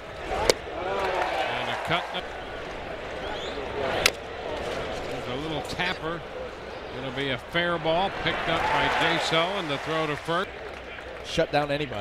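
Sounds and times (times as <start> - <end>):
crowd murmur: 0.0 - 11.2.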